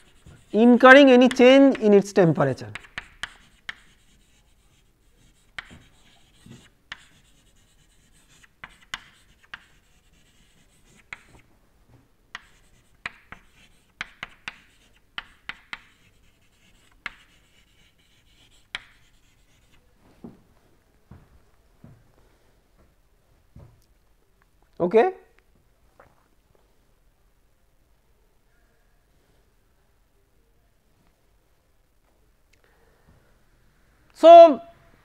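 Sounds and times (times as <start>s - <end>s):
chalk tapping and scraping on board: 0.0s - 1.9s, 2.7s - 11.5s, 12.3s - 19.8s.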